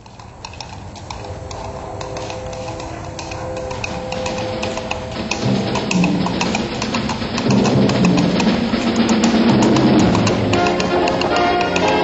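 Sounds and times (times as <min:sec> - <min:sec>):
coconut halves clip-clop: 0:00.0 - 0:12.0
low steady hum: 0:00.0 - 0:12.0.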